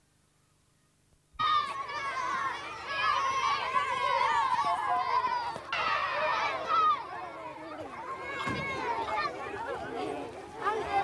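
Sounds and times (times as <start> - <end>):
crowd of children shouting: 1.4 - 11.0.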